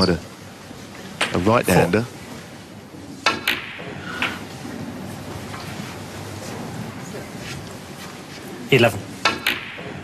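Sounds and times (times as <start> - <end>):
cue striking ball: 3.2 - 4.4, 9.2 - 10.0.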